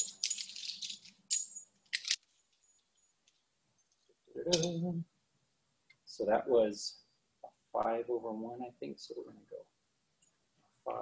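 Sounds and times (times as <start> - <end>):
short metal clinks: 0.0 - 3.1
carabiner rattling: 0.0 - 4.8
cord rustling: 0.0 - 4.8.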